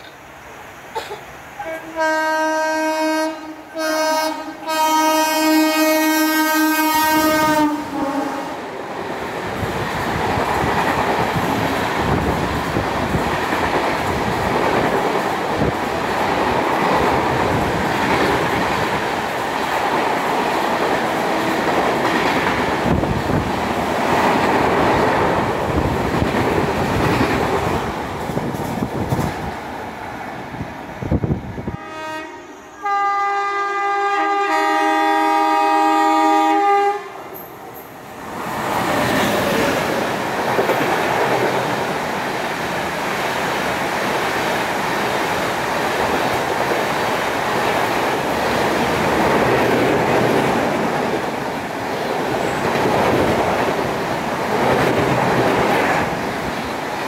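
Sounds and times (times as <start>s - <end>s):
train rushing with wheel clatter: 0.0s - 57.0s
second train horn: 1.6s - 8.6s, 31.6s - 37.4s
train horn honking: 1.6s - 8.6s, 31.6s - 37.4s.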